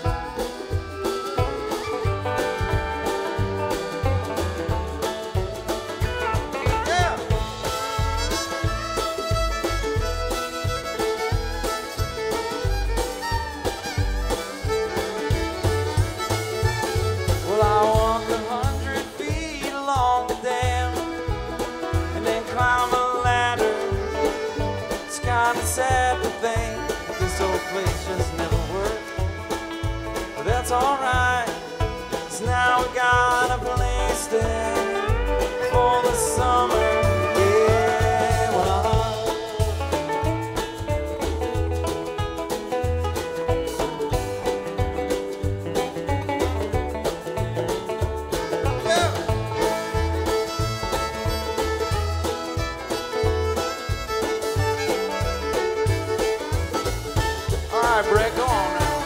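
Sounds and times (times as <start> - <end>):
banjo: 0.0 - 59.0
drums: 0.0 - 59.0
fiddle: 0.0 - 59.0
upright bass: 0.0 - 59.0.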